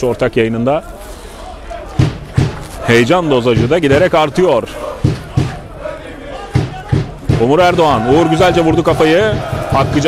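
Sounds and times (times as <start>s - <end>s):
low background murmur: 0.0s - 10.0s
dull thuds: 2.0s - 2.8s, 5.0s - 5.8s, 8.7s - 10.0s.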